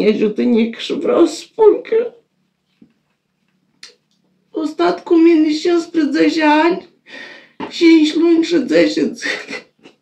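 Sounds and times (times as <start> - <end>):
woman speaking: 0.0 - 2.3, 3.8 - 10.0
faint low hum: 0.0 - 10.0
short breath: 7.1 - 7.6.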